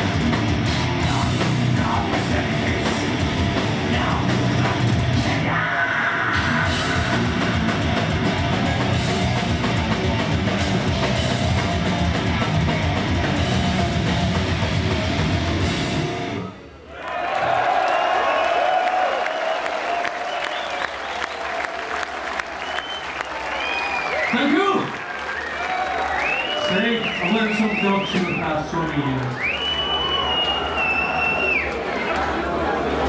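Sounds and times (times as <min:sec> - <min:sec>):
crowd cheering and applauding: 0:16.9 - 0:33.0
crowd shouts: 0:16.9 - 0:33.0
high whistles: 0:19.3 - 0:21.4, 0:22.6 - 0:24.6, 0:25.2 - 0:28.6, 0:29.3 - 0:31.7.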